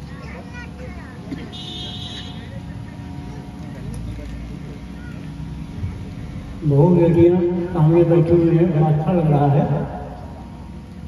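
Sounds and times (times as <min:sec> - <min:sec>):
faint indistinct speech: 0:00.0 - 0:06.3
steady low hum: 0:00.0 - 0:11.0.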